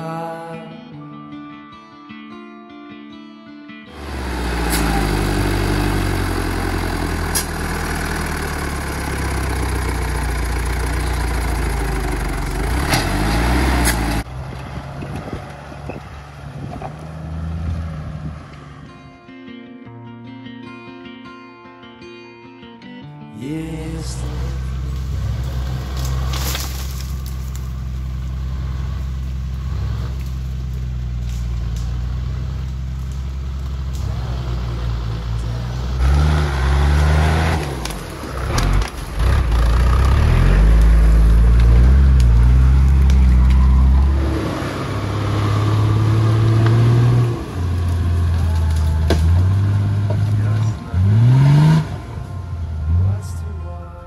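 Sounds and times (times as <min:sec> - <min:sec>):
engine running and revving: 0:03.9 - 0:19.1, 0:23.8 - 0:53.6.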